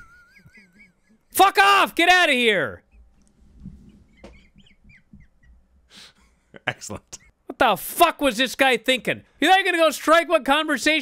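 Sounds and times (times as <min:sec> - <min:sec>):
breathy squeaky laughter: 0:00.0 - 0:01.3, 0:03.9 - 0:07.4.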